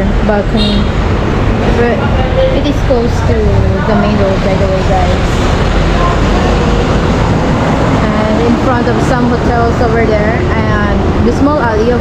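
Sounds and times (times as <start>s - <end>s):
dump truck engine rumbling: 0.0s - 12.0s
road traffic passing: 0.0s - 12.0s.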